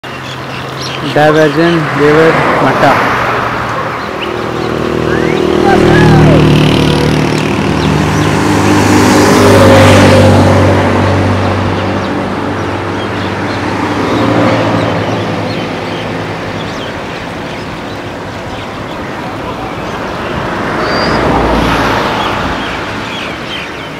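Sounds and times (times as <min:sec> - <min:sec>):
vehicle engines running: 0:00.0 - 0:23.9
vehicle passing by: 0:00.2 - 0:23.9.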